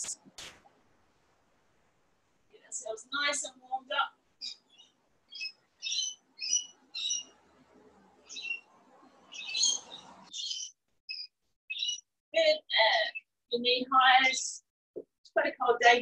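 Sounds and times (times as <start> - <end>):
bird chirping: 4.4 - 12.1.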